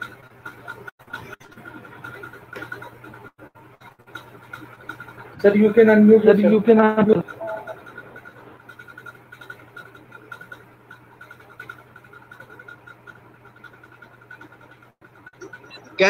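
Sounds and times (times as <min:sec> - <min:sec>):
faint pulsing tone: 0:06.4 - 0:16.0.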